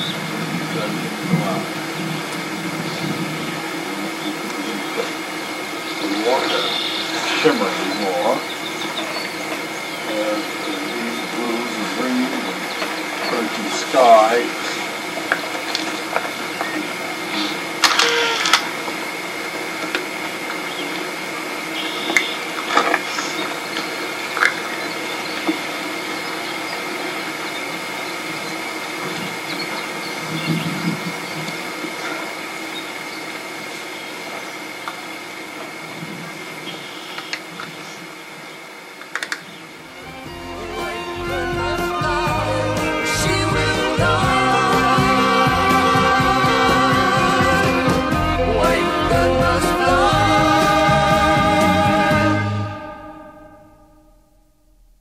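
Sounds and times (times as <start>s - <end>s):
mechanical hum with whine: 0.0s - 55.0s
music with singing: 40.0s - 53.7s.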